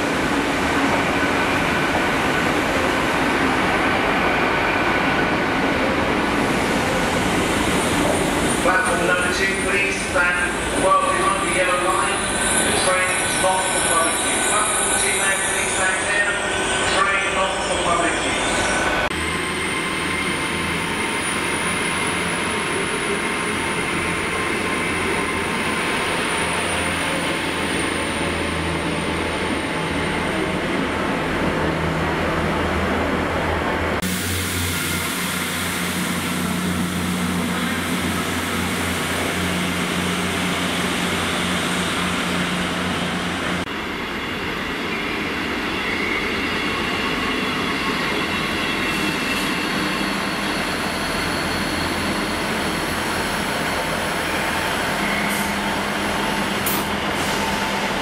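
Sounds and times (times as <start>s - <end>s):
train wheels rumbling on rails: 0.0s - 58.0s
high squealing wheels: 44.8s - 58.0s.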